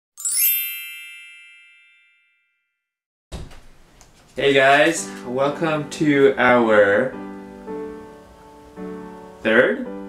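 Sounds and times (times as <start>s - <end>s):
bright sparkling chime: 0.2s - 2.7s.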